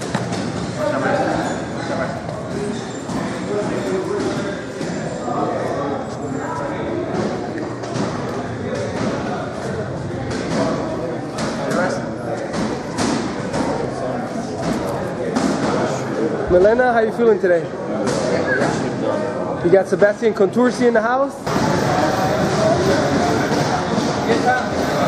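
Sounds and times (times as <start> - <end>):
people talking: 0.7 - 25.0.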